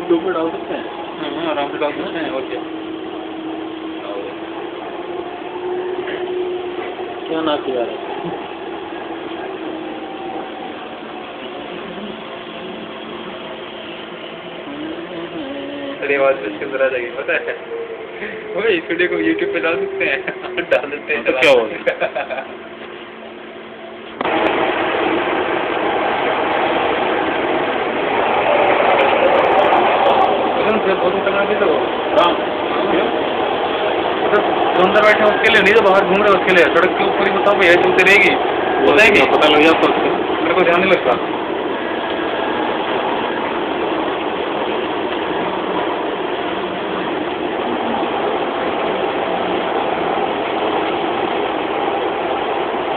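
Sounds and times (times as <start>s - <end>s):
train running rumble: 0.0s - 52.9s.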